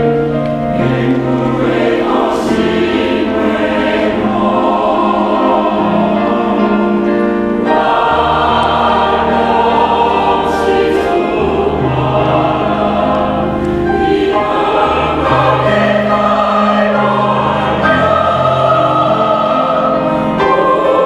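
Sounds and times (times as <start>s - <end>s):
mixed choir singing slow song: 0.7s - 21.0s.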